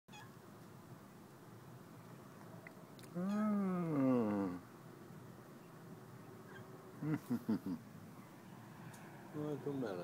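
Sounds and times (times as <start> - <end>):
faint background hiss: 0.1 - 10.0
faint pitched call: 3.1 - 4.6.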